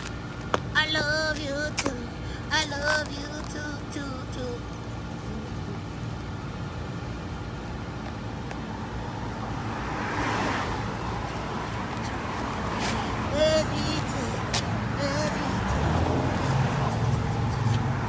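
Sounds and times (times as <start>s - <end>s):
road rumble: 0.0s - 18.0s
car passing: 8.7s - 18.0s.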